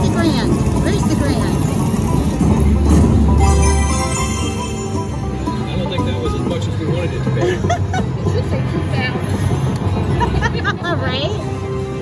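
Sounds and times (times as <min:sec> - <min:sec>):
slot machine music: 0:00.0 - 0:07.4
casino crowd chatter: 0:00.0 - 0:12.0.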